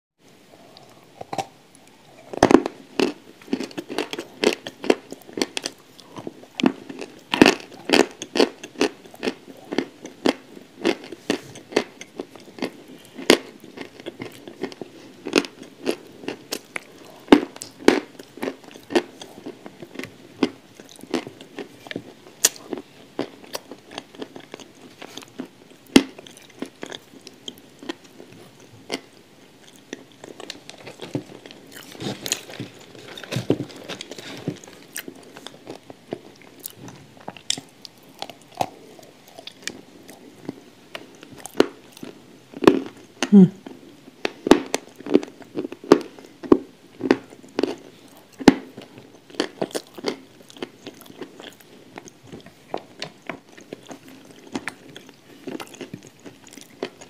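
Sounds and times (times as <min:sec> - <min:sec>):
crunchy biting and chewing: 0:00.6 - 0:43.1, 0:44.4 - 0:57.0.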